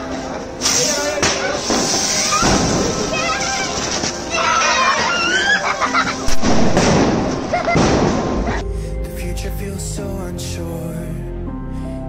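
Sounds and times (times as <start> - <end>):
background music: 0.0 - 12.0
firecracker fizzing and crackling: 0.6 - 4.8, 6.3 - 8.6
sharp bang: 0.7 - 3.2, 6.3 - 8.6
high squeaky shouts: 2.0 - 5.9.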